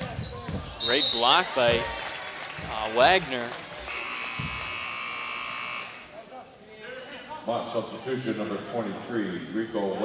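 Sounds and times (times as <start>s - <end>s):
scoreboard horn buzz: 3.8s - 6.1s.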